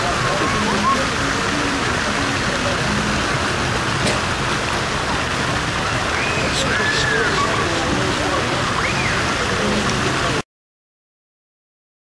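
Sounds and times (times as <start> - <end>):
faint voices: 0.0 - 10.4
running water: 0.0 - 10.4.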